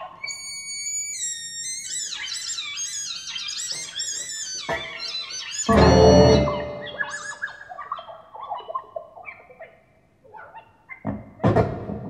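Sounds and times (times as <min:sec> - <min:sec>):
electronic chord: 0:05.7 - 0:07.2
short pitched electronic notes: 0:05.7 - 0:07.3.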